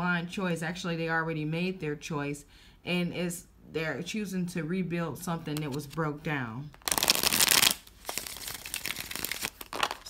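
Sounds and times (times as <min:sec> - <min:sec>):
cards being shuffled: 0:06.8 - 0:10.0.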